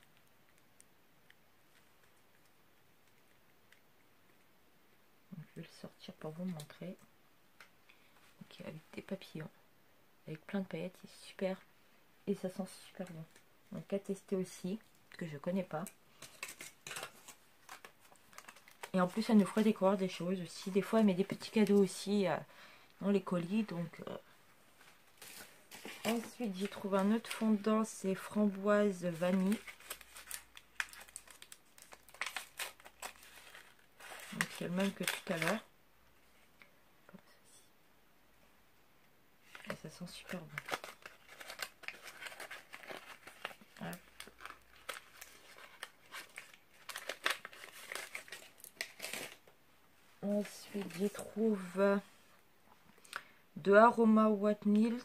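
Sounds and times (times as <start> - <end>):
packaging crinkling and rustling: 16.1 - 19.9, 24.8 - 35.7, 39.4 - 49.5, 50.4 - 51.4.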